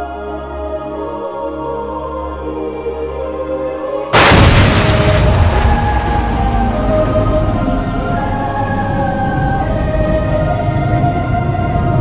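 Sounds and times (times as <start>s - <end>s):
ambient soundtrack music: 0.0s - 12.0s
deep boom rumbling: 4.2s - 8.3s.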